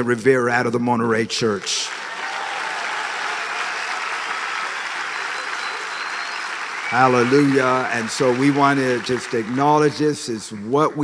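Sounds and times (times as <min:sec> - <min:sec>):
congregation applauding: 0:01.4 - 0:11.0.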